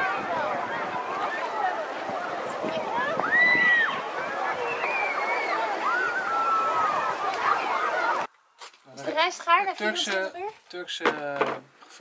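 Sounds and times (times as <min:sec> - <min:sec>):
children calling: 0:00.0 - 0:08.3.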